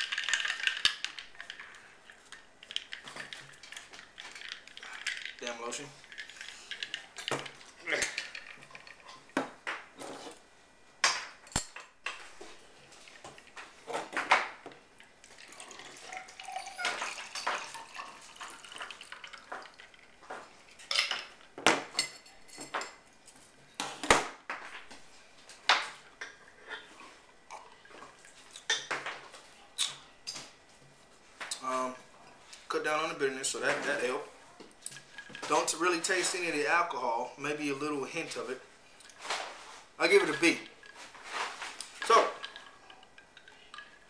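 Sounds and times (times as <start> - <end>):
drink pouring over ice: 0.0 - 9.4, 15.0 - 21.0, 37.8 - 44.0
ice rattling in cocktail shaker: 0.0 - 9.4, 15.2 - 21.4, 34.8 - 36.9, 37.8 - 44.0.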